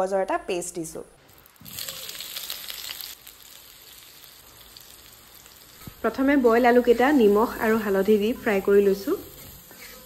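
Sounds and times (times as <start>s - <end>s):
potatoes sizzling in oil: 1.2s - 10.0s.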